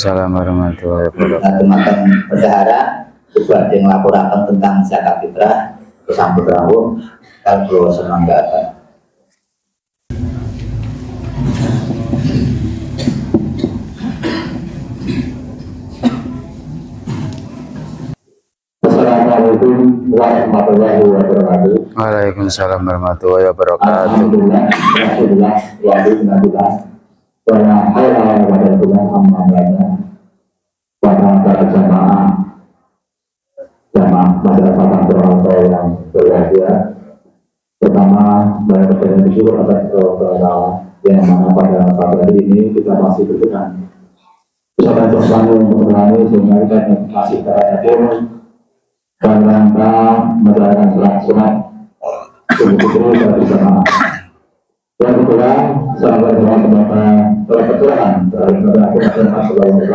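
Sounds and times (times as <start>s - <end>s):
man speaking over loudspeaker: 0.0s - 8.8s, 18.8s - 26.9s, 27.5s - 30.1s, 31.0s - 32.6s, 34.0s - 37.1s, 37.8s - 43.9s, 44.8s - 48.4s, 49.2s - 54.2s, 55.0s - 59.9s
man chanting into a microphone: 18.8s - 26.9s, 27.5s - 30.2s, 31.0s - 32.6s, 33.9s - 37.2s, 37.8s - 43.9s, 44.8s - 48.4s, 49.2s - 54.0s, 55.0s - 59.9s.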